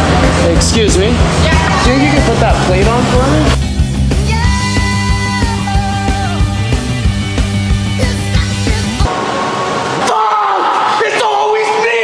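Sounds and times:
man yelling: 0:01.4 - 0:02.7, 0:10.0 - 0:12.0.

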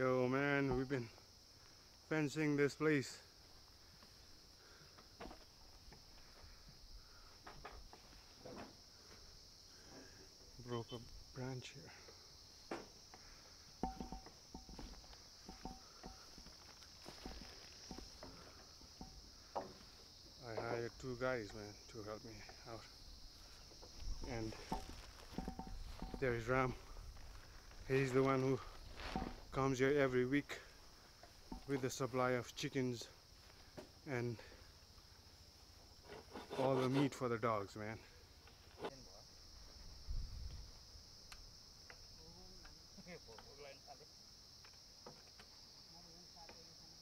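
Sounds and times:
high-pitched insect drone: 0:00.0 - 0:36.5
crickets chirring: 0:00.0 - 0:47.0.

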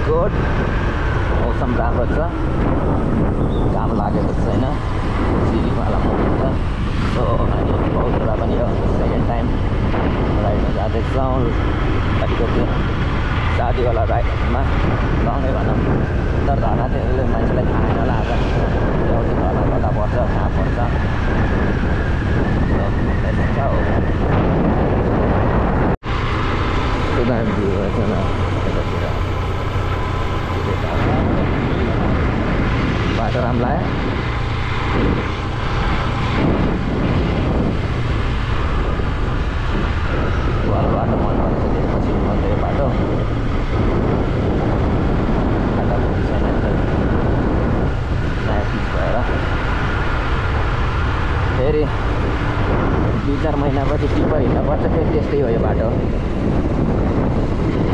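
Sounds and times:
wind noise on microphone: 0:00.0 - 0:57.9.

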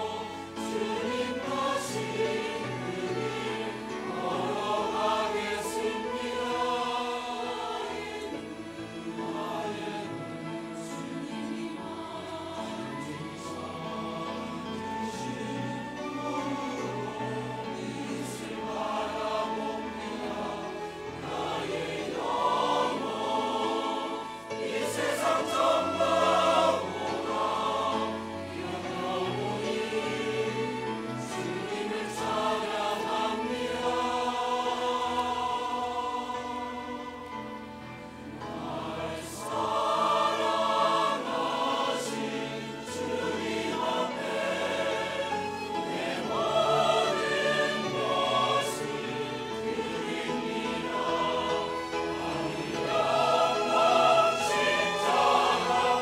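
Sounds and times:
violins cello clarinet and piano: 0:00.0 - 0:35.2, 0:36.3 - 0:56.0
church choir singing a hymn: 0:00.0 - 0:56.0.

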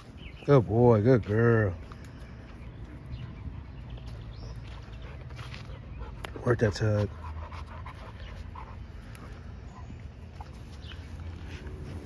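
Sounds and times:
dogs panting: 0:01.3 - 0:12.0.

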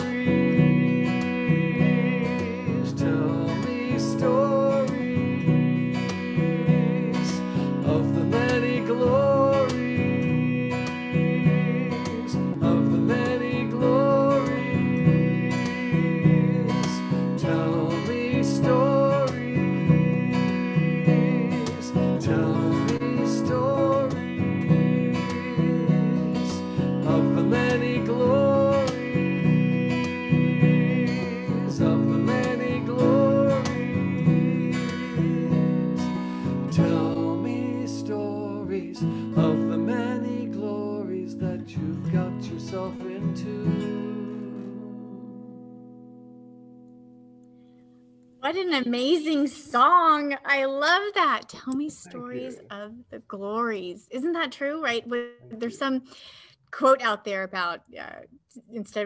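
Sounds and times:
acoustic guitar strumming: 0:00.0 - 0:52.9.

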